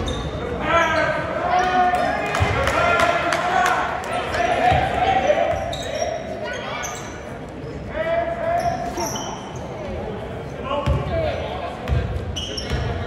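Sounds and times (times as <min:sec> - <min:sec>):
sneaker squeaks: 0:00.0 - 0:01.8, 0:05.3 - 0:07.8, 0:08.5 - 0:10.0, 0:10.8 - 0:13.0
voices echoing in hall: 0:00.0 - 0:13.0
basketball bouncing on court: 0:10.8 - 0:11.1, 0:11.8 - 0:13.0.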